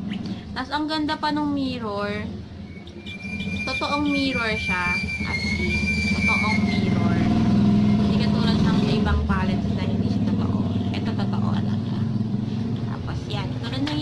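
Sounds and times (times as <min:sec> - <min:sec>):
vehicle engine running: 0:00.0 - 0:14.0.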